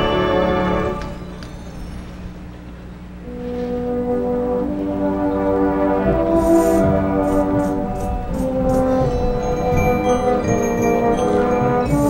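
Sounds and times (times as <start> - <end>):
brass sustained chord: 0.0 - 1.9, 3.2 - 12.0
marching band low note: 0.0 - 12.0.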